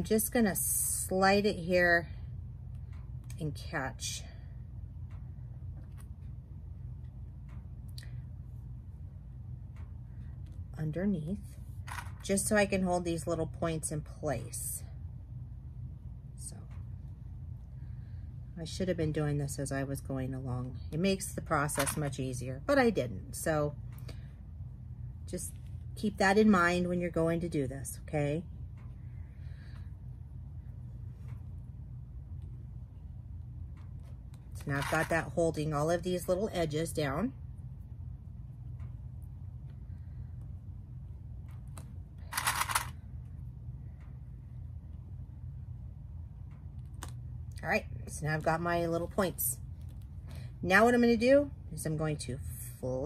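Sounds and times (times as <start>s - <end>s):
low room hum: 0.0s - 53.0s
rattle of plastic clips: 34.0s - 35.2s.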